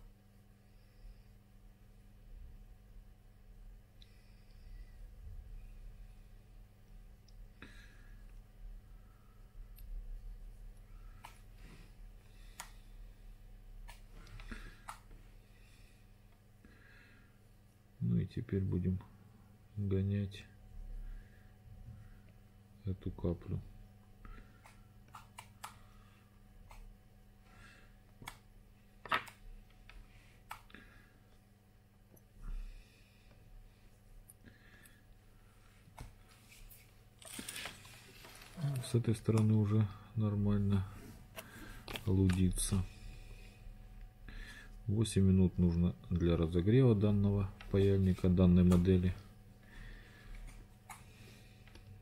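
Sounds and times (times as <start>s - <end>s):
low steady hum: 0.0s - 52.0s.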